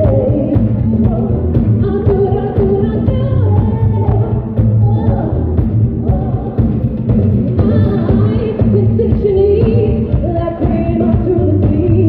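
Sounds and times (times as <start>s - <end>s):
bass guitar: 0.0s - 12.0s
drums: 0.0s - 12.0s.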